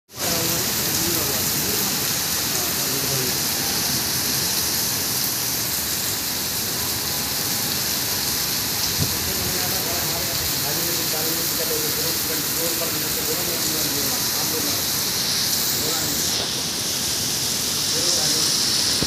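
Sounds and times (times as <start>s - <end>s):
heavy rain on pavement: 0.1s - 19.0s.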